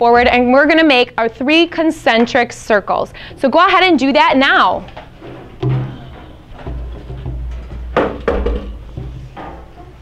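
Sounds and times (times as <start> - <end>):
knocks on drums: 6.7 - 9.2.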